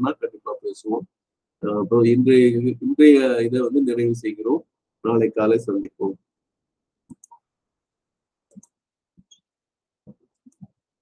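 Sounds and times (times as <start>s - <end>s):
faint clicks and taps: 7.1s - 7.5s, 8.5s - 9.5s, 10.1s - 10.8s.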